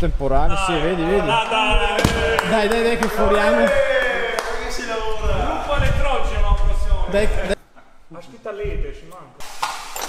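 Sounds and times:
men talking: 0:00.0 - 0:09.4.

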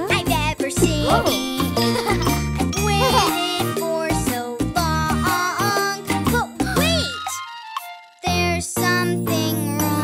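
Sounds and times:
cheerful cartoon music: 0:00.0 - 0:10.0.

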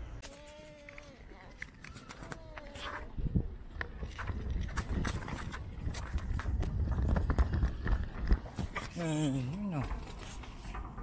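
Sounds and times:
pushchair rolling over paving: 0:01.0 - 0:11.0.

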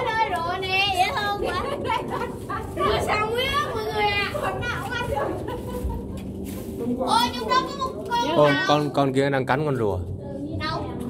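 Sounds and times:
children calling out and talking: 0:00.0 - 0:05.8, 0:06.6 - 0:08.9.

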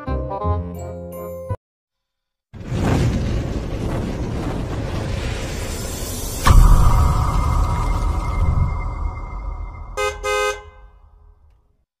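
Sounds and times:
vehicle horn beeping: 0:10.0 - 0:10.9.

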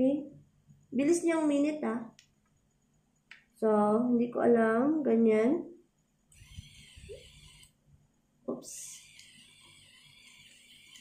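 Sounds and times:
faint high hiss: 0:05.8 - 0:11.0.

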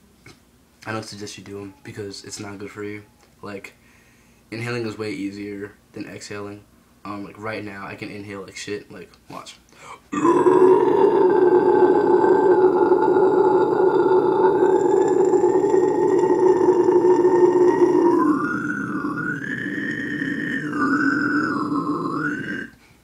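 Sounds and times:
man inhaled low scream: 0:10.2 - 0:22.9.

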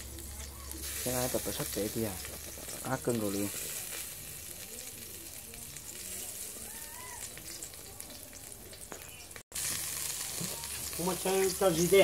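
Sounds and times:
meat sizzling on a grill: 0:00.0 - 0:12.0.

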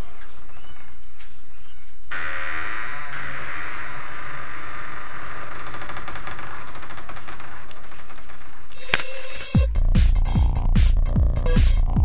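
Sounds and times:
dense rapid rattling: 0:05.5 - 0:08.8.

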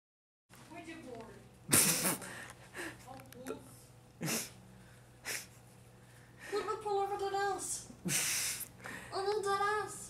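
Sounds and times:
person laughing quietly: 0:01.7 - 0:03.1.

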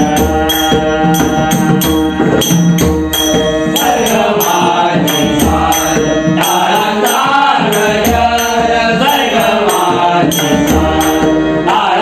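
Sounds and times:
harmonium: 0:00.0 - 0:12.0
men singing devotional song: 0:00.0 - 0:12.0.

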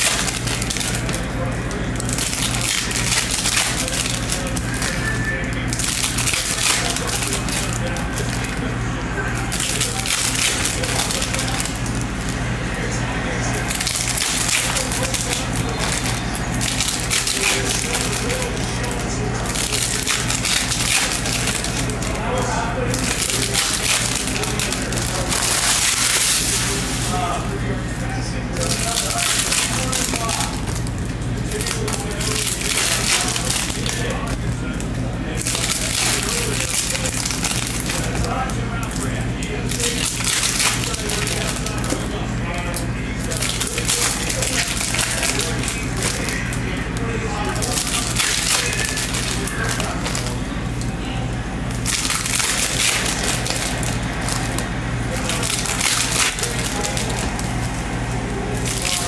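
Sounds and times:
foil wrappers crinkling: 0:00.0 - 0:59.0.

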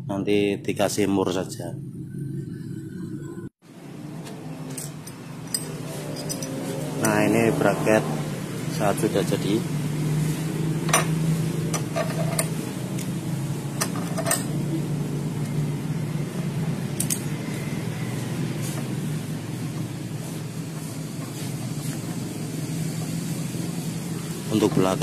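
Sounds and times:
low background hum: 0:00.0 - 0:09.6
metal parts clinking: 0:04.7 - 0:06.6, 0:11.7 - 0:12.6, 0:13.8 - 0:14.6, 0:17.0 - 0:17.4.

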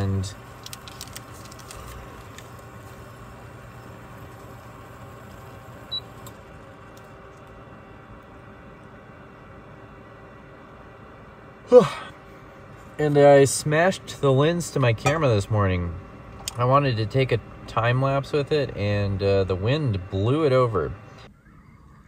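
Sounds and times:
electric cooktop hum: 0:00.0 - 0:22.0.

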